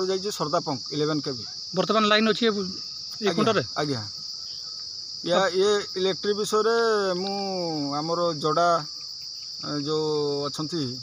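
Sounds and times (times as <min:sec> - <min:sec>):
man speaking: 0:00.0 - 0:04.2, 0:05.2 - 0:08.9, 0:09.6 - 0:11.0
high-pitched insect chorus: 0:00.0 - 0:11.0.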